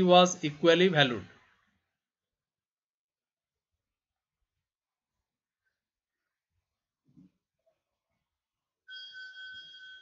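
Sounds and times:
high steady whistle: 8.9 - 10.0.

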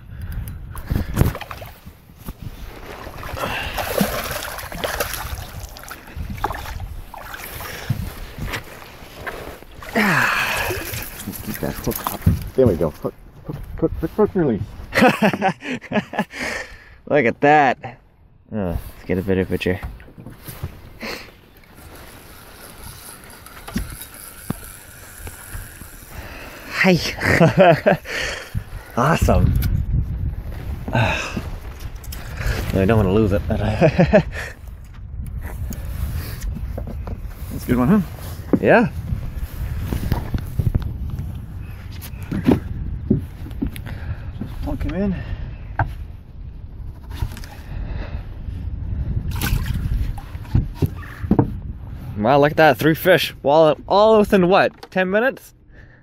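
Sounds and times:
handling noise of net and gear: 0.8 - 13.0, 20.2 - 27.4.

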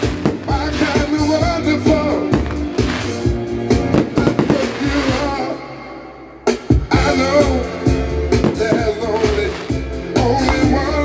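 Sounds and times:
fireworks bursting: 0.0 - 5.6, 8.4 - 10.8
music: 0.0 - 11.0.

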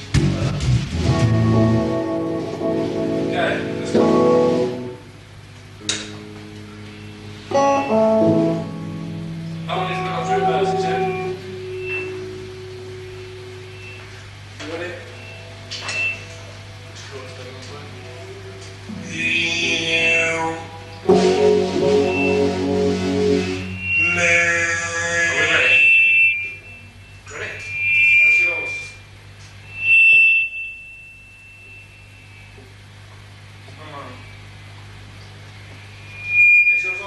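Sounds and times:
low amplifier hum: 0.0 - 37.0
band playing a sustained chord: 0.2 - 5.3, 6.0 - 32.7
electric guitar note ringing: 0.9 - 17.1, 17.8 - 37.0
high-pitched feedback whine: 1.0 - 5.2, 5.9 - 37.0
muffled voices: 9.7 - 12.2, 14.0 - 21.4, 23.9 - 26.7, 27.3 - 29.0, 36.7 - 37.0.

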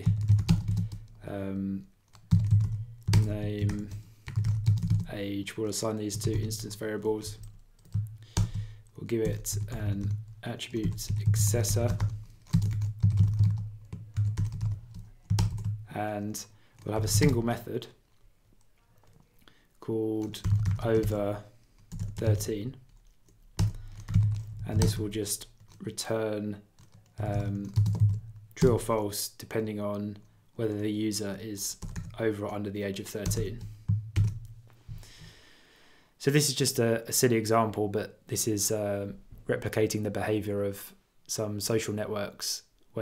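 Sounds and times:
computer keyboard typing: 0.0 - 1.2, 2.1 - 5.1, 6.1 - 15.9, 16.8 - 17.5, 20.2 - 25.8, 26.8 - 28.9, 31.8 - 32.6, 33.2 - 34.5.

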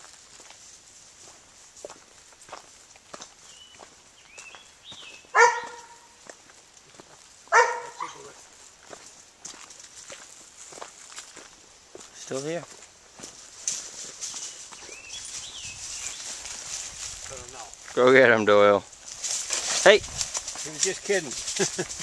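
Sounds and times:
footsteps through brush: 0.0 - 22.0
dog barking: 5.3 - 6.2, 7.5 - 8.3.

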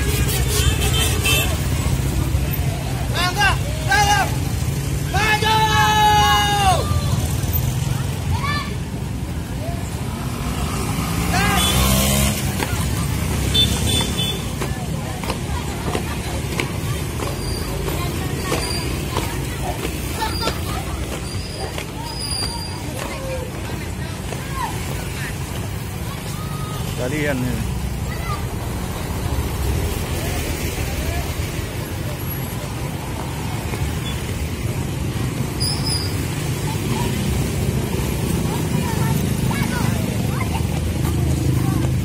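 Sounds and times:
low traffic rumble: 0.0 - 42.0
voices: 0.0 - 42.0
person shouting: 3.1 - 4.4, 5.1 - 7.1, 11.3 - 11.8
motorcycle engines running: 6.7 - 42.0.

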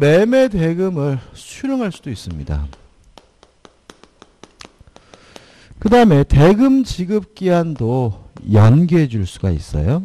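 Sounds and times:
chalk tapping on chalkboard: 2.7 - 5.7.

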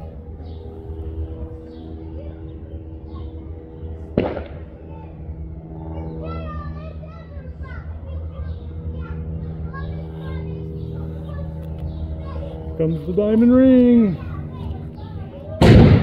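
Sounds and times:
children's voices: 0.0 - 16.0
crowd chatter: 0.0 - 16.0
steady low hum: 0.0 - 16.0
sharp bang: 4.2 - 4.7, 15.6 - 16.0.

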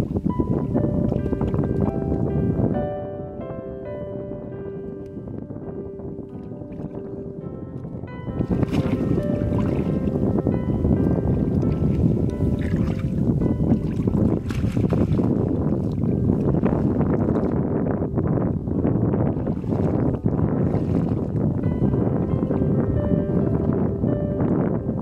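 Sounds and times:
background music with held tones: 0.0 - 25.0
water splashing and sloshing: 6.3 - 7.2, 7.8 - 17.7, 19.2 - 23.9.

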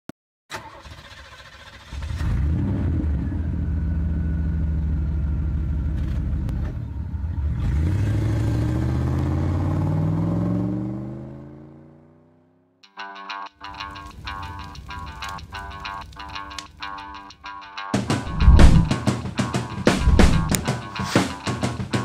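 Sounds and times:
vehicle engine accelerating: 2.2 - 12.1, 18.3 - 18.9.

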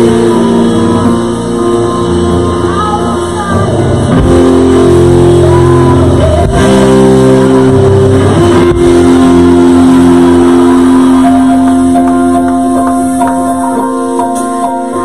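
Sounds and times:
church worship music: 0.0 - 15.0.

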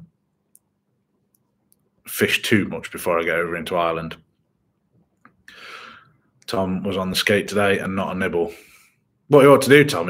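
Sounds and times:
man speaking: 2.1 - 4.2, 6.5 - 8.7, 9.3 - 10.0
intake of breath: 5.5 - 6.2.

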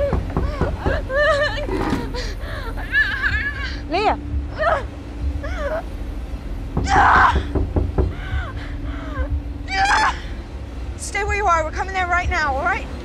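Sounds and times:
woman screaming and sobbing: 0.0 - 3.9, 4.5 - 5.9, 8.2 - 10.4
woman wailing: 0.0 - 5.9, 6.8 - 10.4.

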